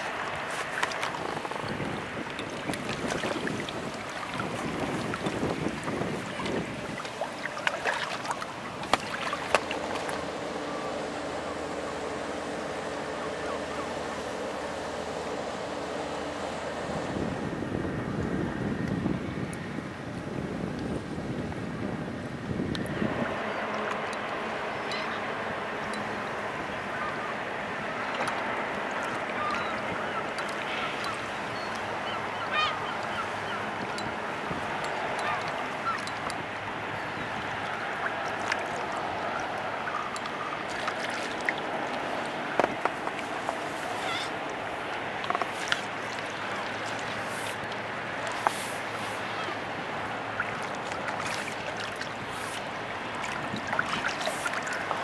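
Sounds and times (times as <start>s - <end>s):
low steady hum: 0.0s - 20.9s
water lapping at bank: 0.0s - 55.0s
wind on microphone: 0.0s - 55.0s.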